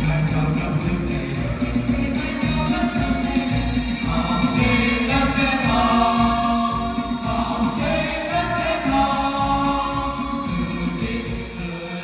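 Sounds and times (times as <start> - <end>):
musical accompaniment: 0.0 - 12.0
children singing into microphones: 2.4 - 12.0.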